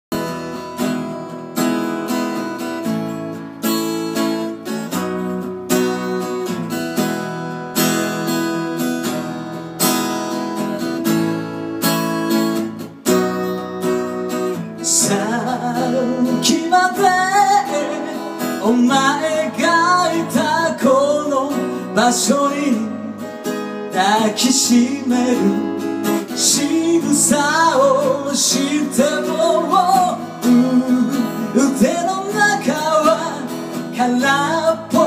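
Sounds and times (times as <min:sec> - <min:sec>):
acoustic guitar strumming: 0:00.1 - 0:35.0
man singing: 0:14.7 - 0:35.0.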